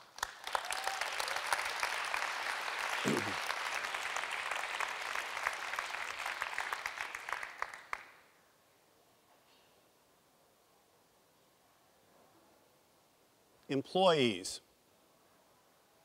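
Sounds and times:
audience applauding: 0:00.0 - 0:08.2.

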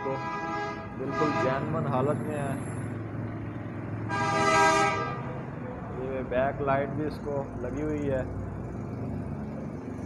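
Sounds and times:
vehicle horn: 0:00.0 - 0:01.7, 0:04.1 - 0:05.4.

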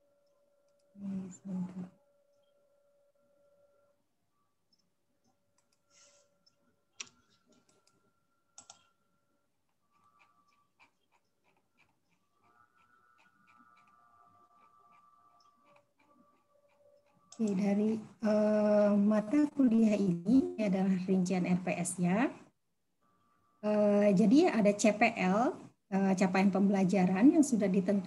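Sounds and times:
faint steady hum: 0:00.0 - 0:28.0
computer mouse and keyboard clicks: 0:08.6 - 0:08.9, 0:17.3 - 0:17.6.

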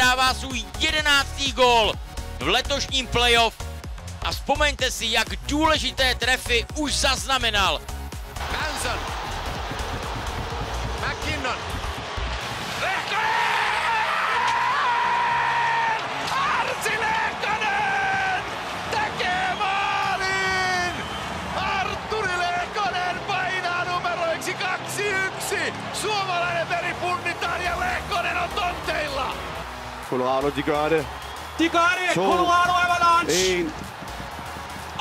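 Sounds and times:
arena crowd noise: 0:08.3 - 0:35.0
sports commentator shouting: 0:12.8 - 0:29.5, 0:31.6 - 0:33.8.

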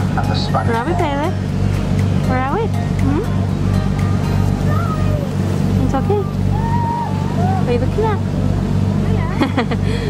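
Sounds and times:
ferry engine hum: 0:00.0 - 0:10.0.

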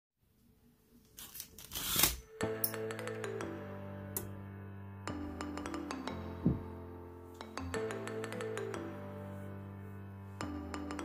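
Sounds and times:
curtain sliding along rod: 0:01.2 - 0:02.2.

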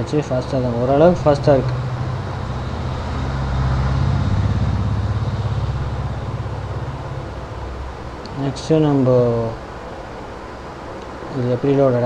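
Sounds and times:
vehicle engine passing by: 0:00.1 - 0:09.8.

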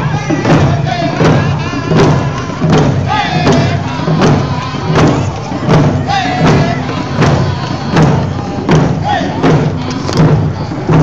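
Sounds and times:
drums beating steadily: 0:00.0 - 0:11.0
voices singing: 0:00.0 - 0:11.0.

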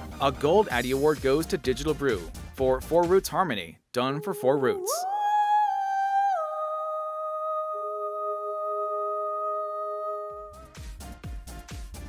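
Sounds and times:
electronic beat with kick drum: 0:10.6 - 0:12.0.

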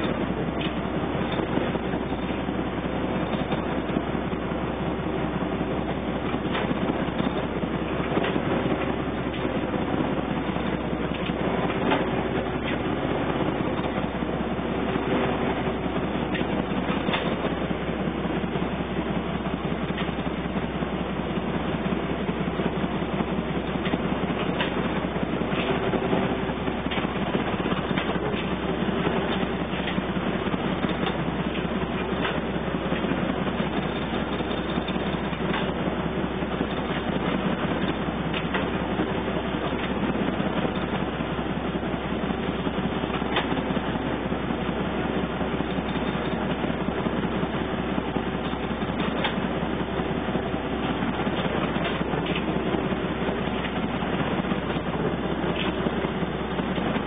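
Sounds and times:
ship diesel engine running: 0:00.0 - 0:57.0.

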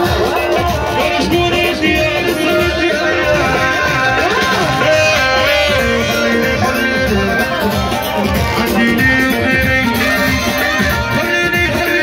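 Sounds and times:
electronic keyboard melody: 0:00.0 - 0:12.0
steady music beat: 0:00.0 - 0:12.0.

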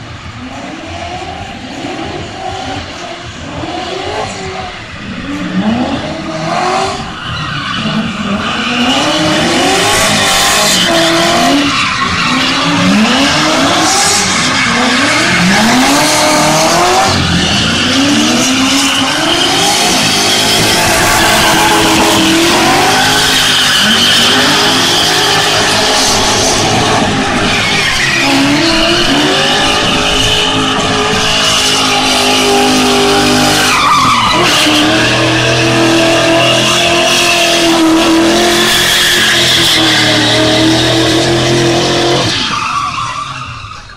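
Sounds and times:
car engines revving: 0:00.0 - 0:43.9
tyres squealing: 0:07.0 - 0:41.4.

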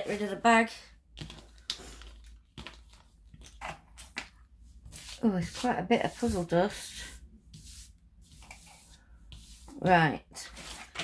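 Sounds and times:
jigsaw puzzle pieces rustling: 0:01.1 - 0:06.3.

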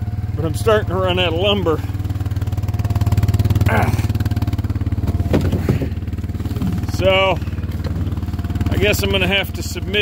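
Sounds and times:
utility vehicle engine idling: 0:00.0 - 0:10.0
short knocks: 0:05.0 - 0:06.8.

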